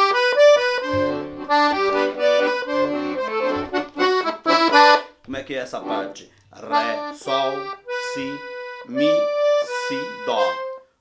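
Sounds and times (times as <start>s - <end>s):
accordion melody: 0.0s - 11.0s
low accordion notes: 0.0s - 11.0s.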